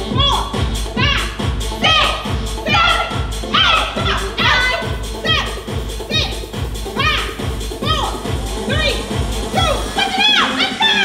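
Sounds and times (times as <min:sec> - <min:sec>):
upbeat dance music: 0:00.0 - 0:11.0.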